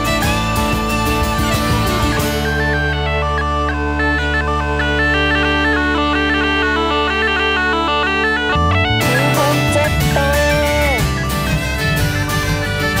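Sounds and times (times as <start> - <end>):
bagpipe drones: 0.0 - 13.0
bagpipe melody: 0.0 - 13.0.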